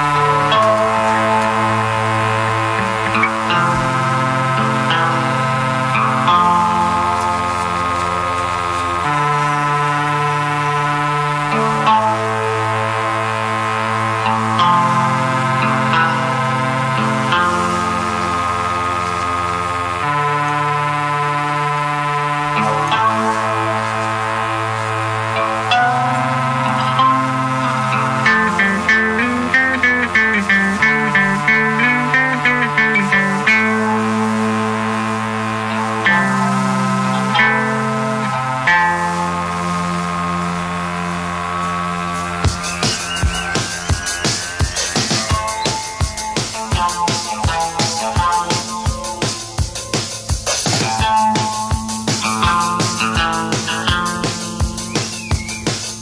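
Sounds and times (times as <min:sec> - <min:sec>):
live band keyboard and bass chord: 0:00.0 - 0:56.0.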